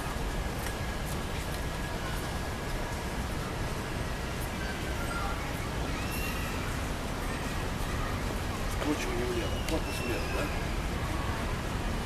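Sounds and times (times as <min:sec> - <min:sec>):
faint high chirp: 0:04.6 - 0:06.7, 0:09.2 - 0:10.9.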